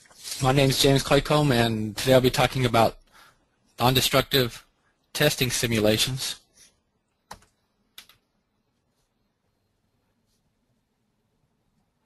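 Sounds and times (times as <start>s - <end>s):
computer key clicks: 7.3s - 8.2s.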